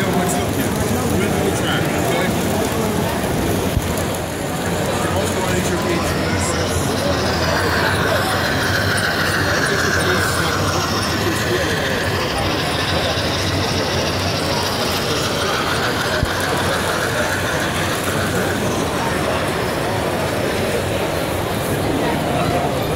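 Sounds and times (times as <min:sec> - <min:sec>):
crowd chatter: 0:00.0 - 0:22.9
model trains clattering: 0:00.0 - 0:22.9.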